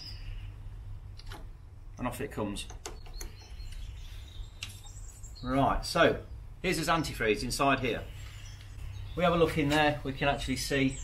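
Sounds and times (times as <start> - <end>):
faint bird chirps: 0.0 - 0.9, 2.8 - 7.3.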